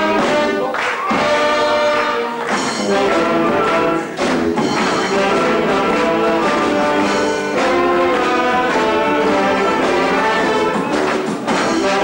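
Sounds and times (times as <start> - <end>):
brass band playing carnival music: 0.0 - 12.0.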